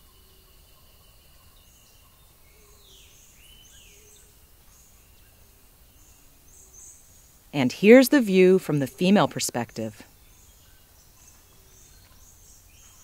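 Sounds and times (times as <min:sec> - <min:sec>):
thin insect tone: 0:00.0 - 0:13.0.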